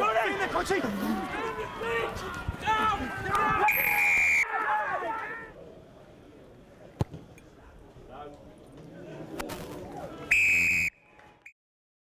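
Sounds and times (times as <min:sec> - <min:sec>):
low crowd noise: 0:00.0 - 0:11.5
referee's whistle long blast: 0:03.6 - 0:04.5, 0:10.3 - 0:10.9.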